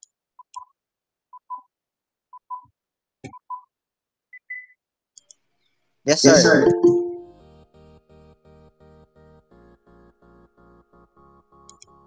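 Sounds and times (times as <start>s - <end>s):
faint ticks: 5.2s - 5.4s, 11.7s - 12.0s
higher beep: 6.2s - 7.3s
short beeps in pairs: 6.3s - 7.3s.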